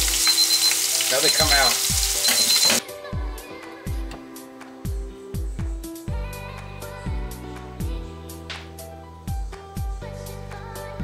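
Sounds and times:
scallops sizzling in frying pan: 0.0 - 2.8
background music with steady beat: 0.0 - 11.0.

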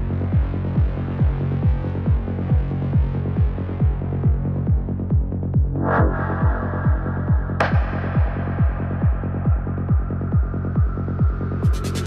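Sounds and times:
kick drum: 0.0 - 12.0
rolling bass pulsing: 0.0 - 12.0
low synth drone: 5.4 - 12.0.

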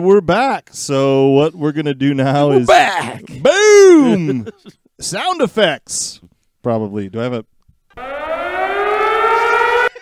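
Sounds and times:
rising siren wail: 8.0 - 10.0.

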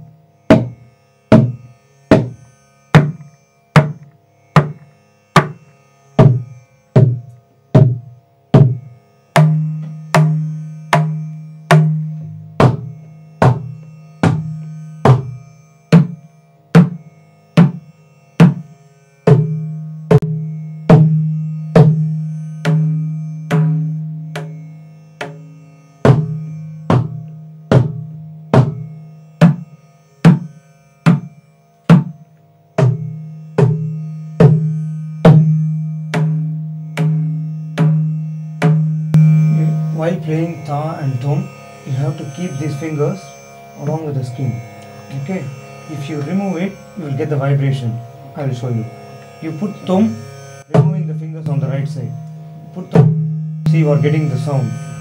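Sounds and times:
mridangam drum strokes: 0.0 - 32.2, 32.8 - 55.0.

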